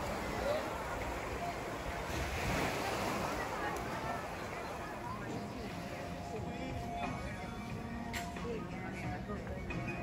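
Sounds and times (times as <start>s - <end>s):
distant chatter of beachgoers: 0.0s - 10.0s
gentle surf: 0.0s - 10.0s.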